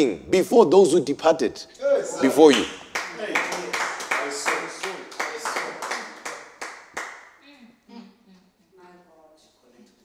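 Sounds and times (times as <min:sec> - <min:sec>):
hands clapping in a beat: 0:02.5 - 0:07.3.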